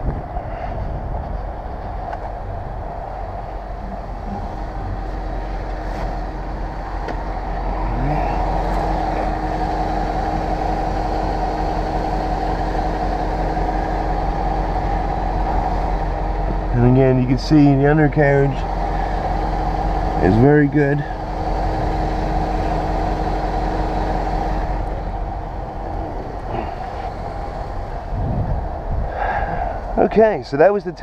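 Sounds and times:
wind noise: 0.0 - 12.8, 21.2 - 30.5
tyres rumbling over asphalt: 0.0 - 31.0
car engine accelerating: 1.0 - 30.2.

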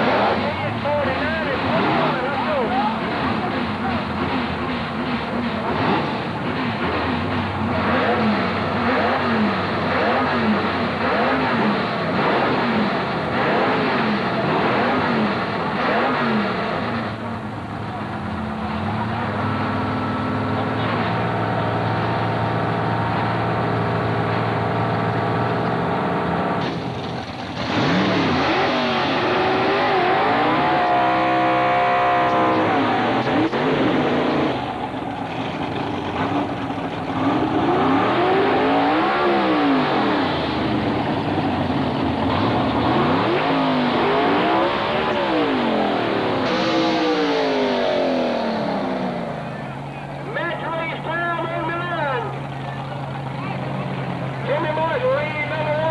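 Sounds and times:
drag racing car engines: 0.0 - 55.9.

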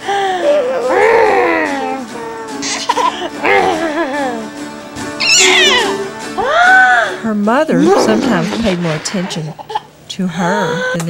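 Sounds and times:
background music: 0.0 - 10.0
baby squealing: 5.2 - 6.0.

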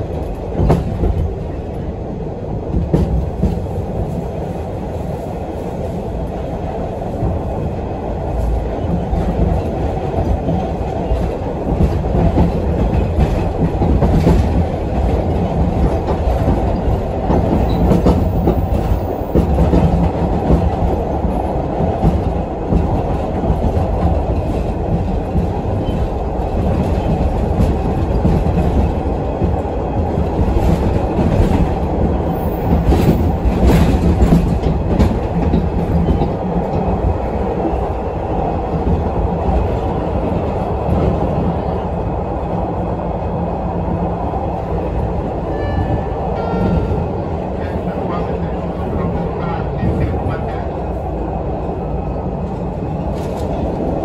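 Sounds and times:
subway car low rumble: 0.0 - 54.0.

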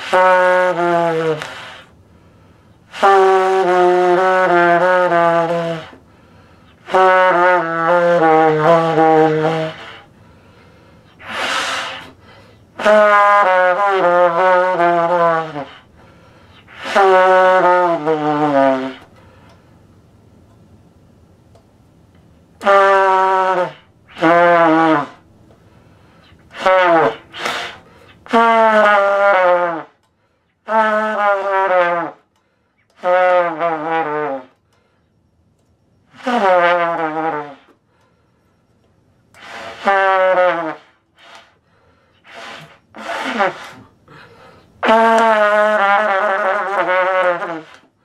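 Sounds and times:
trumpet notes sliding down: 0.0 - 1.9, 6.8 - 10.1, 22.6 - 25.2, 26.2 - 30.0, 36.2 - 37.8, 39.4 - 41.5, 42.2 - 43.9, 44.8 - 47.9.

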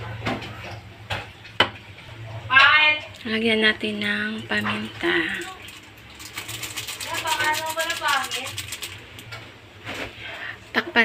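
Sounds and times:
pepper shaken from packet: 5.7 - 9.3.

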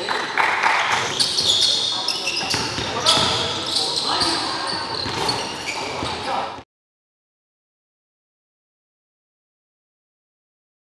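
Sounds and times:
basketball court noise: 0.0 - 6.6
players' voices: 0.0 - 6.6.

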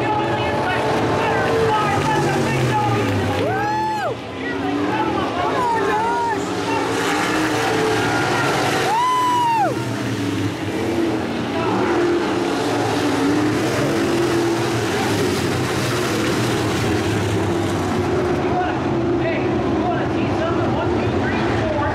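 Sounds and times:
race car engines droning: 0.0 - 21.9.

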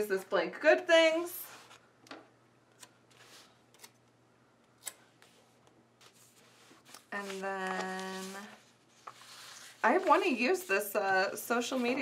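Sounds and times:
paper rustling: 5.2 - 12.0.

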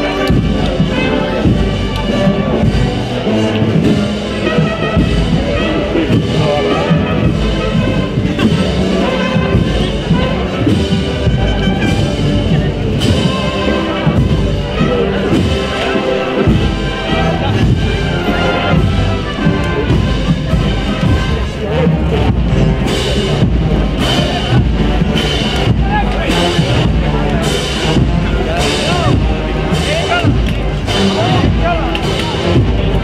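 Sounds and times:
crowd chatter: 0.0 - 33.0
drum beats: 0.0 - 33.0
wind band playing a march: 0.0 - 33.0.

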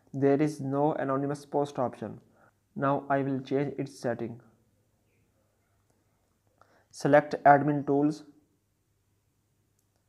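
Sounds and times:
man narrating: 0.2 - 2.2, 2.8 - 4.4, 6.9 - 8.3.

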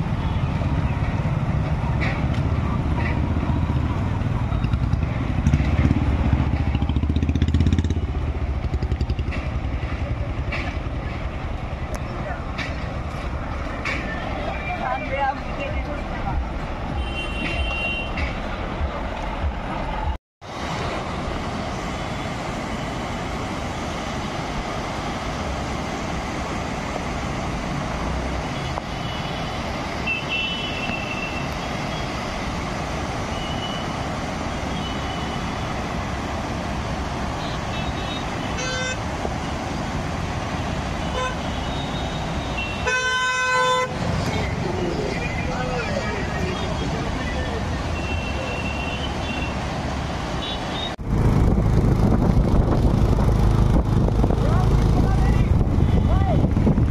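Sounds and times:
motorcycles and cars passing: 0.0 - 17.0, 18.2 - 56.9
horns honking: 16.9 - 18.4, 28.5 - 32.2, 34.6 - 35.7, 37.3 - 39.1, 41.0 - 44.5, 45.2 - 49.7, 50.3 - 51.0.

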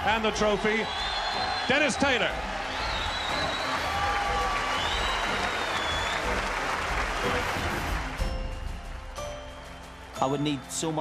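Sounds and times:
audience applauding: 0.0 - 8.5
music: 0.0 - 11.0.

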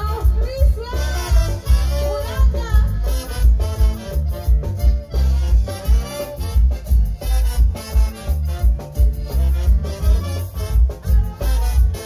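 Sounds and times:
live band latin dance music: 0.0 - 12.0
strong bass beat: 2.6 - 12.0.

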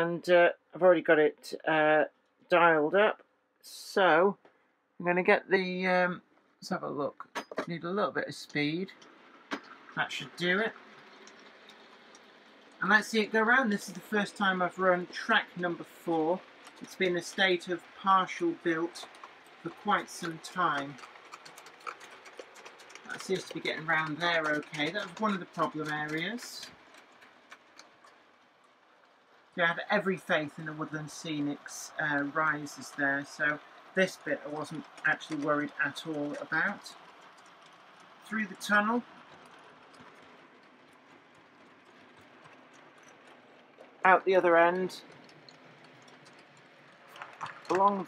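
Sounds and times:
model train running on track: 5.1 - 48.0
wheels clicking on rails: 5.6 - 48.0.

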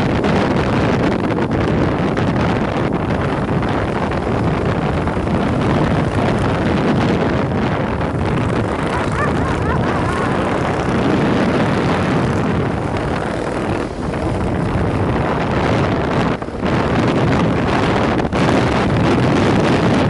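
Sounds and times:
motorcycle engine running: 0.0 - 20.0
wind rushing over microphone: 0.0 - 20.0.

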